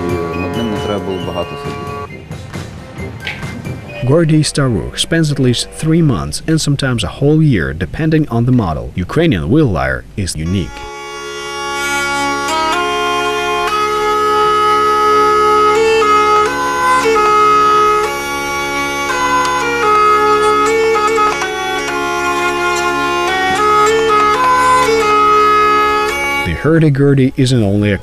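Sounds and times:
hurdy-gurdy drone and melody: 0.0 - 2.2, 3.2 - 7.5, 10.4 - 26.8.

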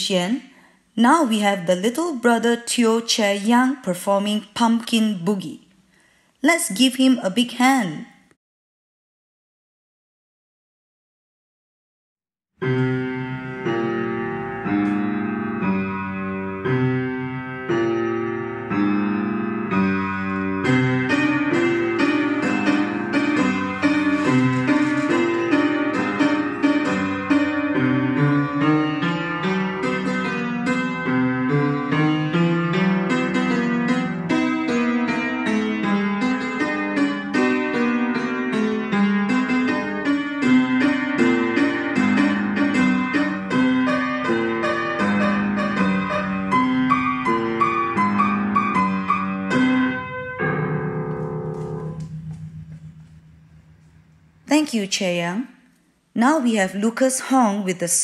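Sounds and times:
boogie piano piece: 12.6 - 54.5.

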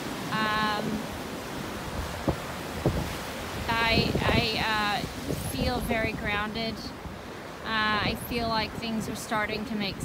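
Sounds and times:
waves washing over cobbles: 0.0 - 8.4
wind on microphone: 0.0 - 10.0.

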